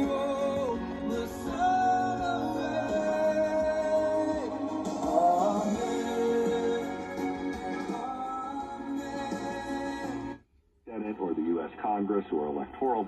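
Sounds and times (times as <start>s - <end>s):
song on car radio: 0.0s - 11.6s.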